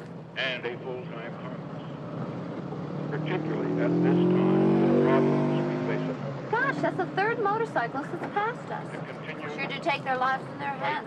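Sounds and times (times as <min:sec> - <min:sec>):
motorcycle engine passing by: 0:01.8 - 0:07.6.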